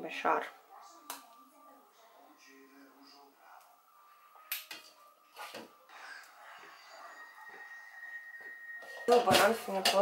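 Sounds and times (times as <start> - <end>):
spoons clinking on a glass bowl: 8.4 - 10.0.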